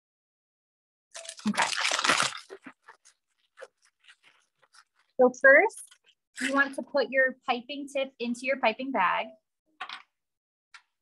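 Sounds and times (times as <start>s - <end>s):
plastic bag crinkling: 1.2s - 6.6s.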